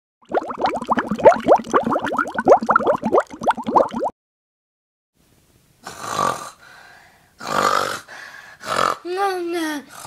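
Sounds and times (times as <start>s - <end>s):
water bubbling with rising plops: 0.2s - 4.1s.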